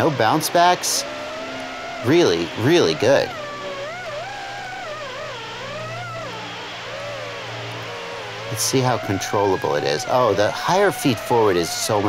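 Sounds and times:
quadcopter propellers whining: 0.0s - 12.0s.

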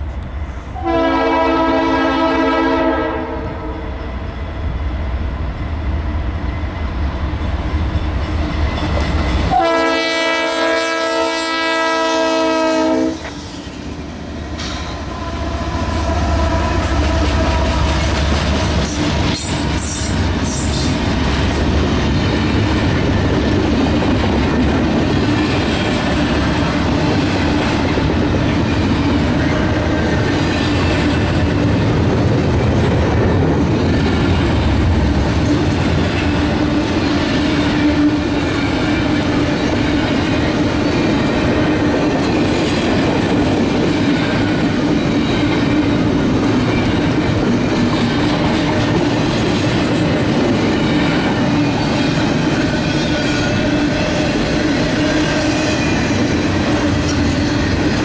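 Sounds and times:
freight train wheels on rails: 0.0s - 58.0s.

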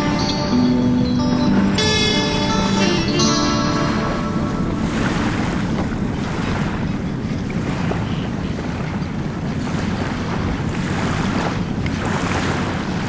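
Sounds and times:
song ending notes: 0.0s - 6.3s
steady rushing noise: 2.4s - 13.0s.

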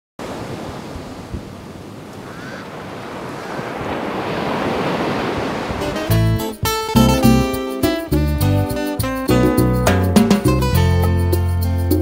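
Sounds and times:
ocean surf washing onto shore: 0.2s - 6.5s.

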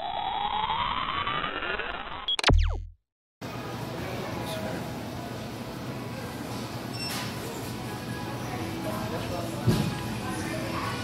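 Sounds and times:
sharp hit with low boom: 2.4s - 3.0s
store background noise: 3.4s - 11.0s.

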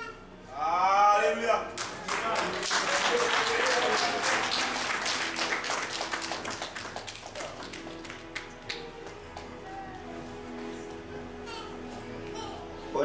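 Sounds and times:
congregation clapping: 1.7s - 9.7s.

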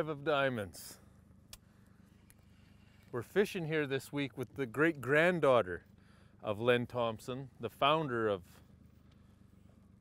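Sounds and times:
faint low rumble: 0.0s - 10.0s
small click: 1.5s - 2.4s.

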